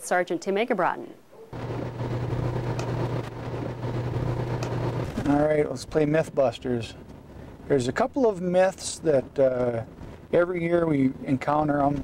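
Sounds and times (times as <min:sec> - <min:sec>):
car engine and road drone: 0:01.6 - 0:12.0.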